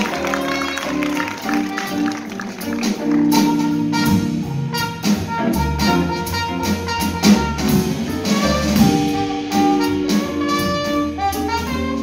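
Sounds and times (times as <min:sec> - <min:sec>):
trumpet melody: 0:00.0 - 0:12.0
upright double bass: 0:00.0 - 0:12.0.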